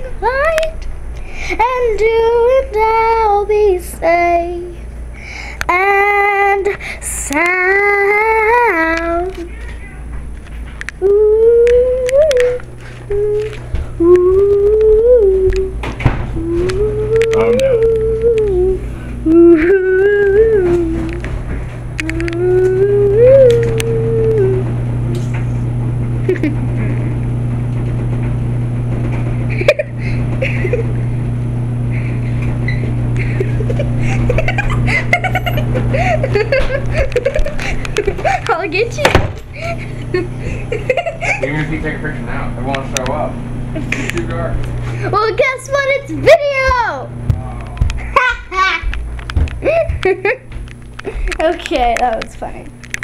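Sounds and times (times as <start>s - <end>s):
girl humming: 5.6s - 10.0s, 11.0s - 21.4s, 22.0s - 25.3s, 33.1s - 41.4s, 49.6s - 50.4s
indistinct voices: 5.6s - 25.6s.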